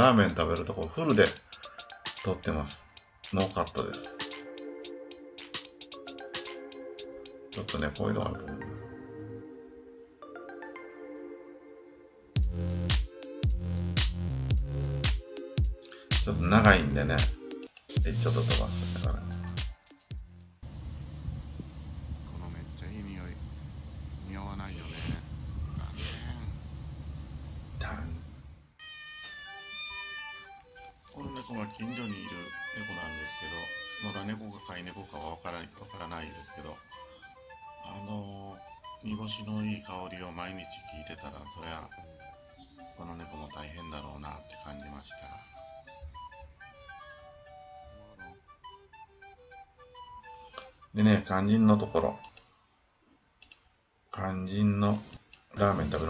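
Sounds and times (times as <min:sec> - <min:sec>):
low outdoor rumble: 0:20.6 - 0:28.6
cat meowing: 0:28.8 - 0:34.5
held musical tones: 0:28.8 - 0:52.4
computer mouse clicks: 0:53.4 - 0:53.7.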